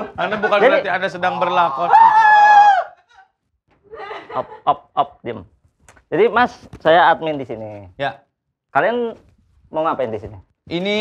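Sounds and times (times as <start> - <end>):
woman screaming: 1.7 - 3.3.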